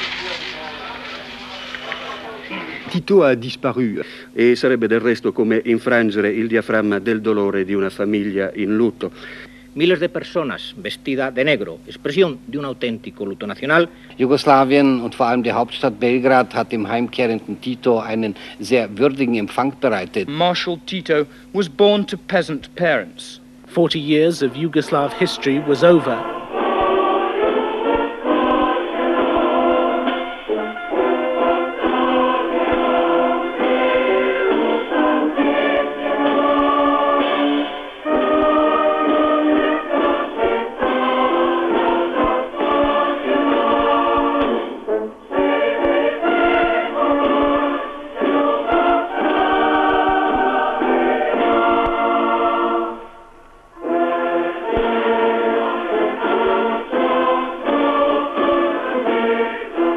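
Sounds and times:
choir singing held chords: 24.4s - 59.9s.

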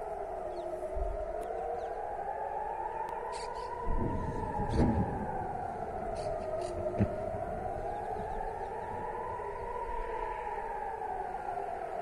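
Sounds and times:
wailing siren: 0.0s - 12.0s.

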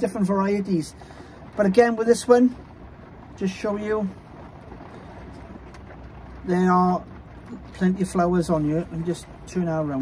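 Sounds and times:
steady low background noise: 0.0s - 10.0s.

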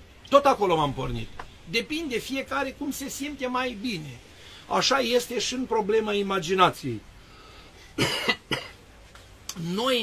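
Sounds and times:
man coughing: 8.0s - 8.8s.

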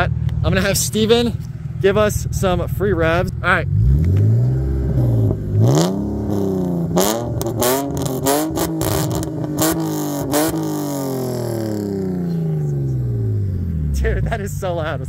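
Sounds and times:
loud car engine revving: 2.2s - 15.0s.

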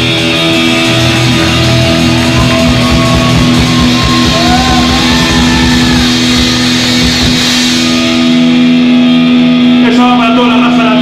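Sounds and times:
drums and ringing cymbals: 0.0s - 9.8s
distorted electric guitars: 0.0s - 11.0s
live rock band: 0.0s - 11.0s.

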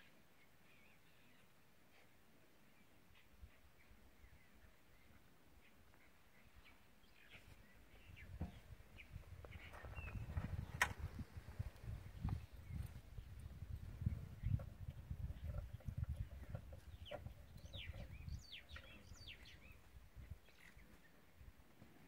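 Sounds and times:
low rumbling microphone noise: 7.5s - 20.6s.

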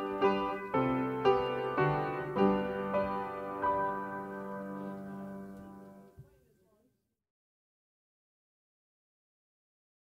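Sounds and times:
electric piano chord: 0.0s - 6.1s.

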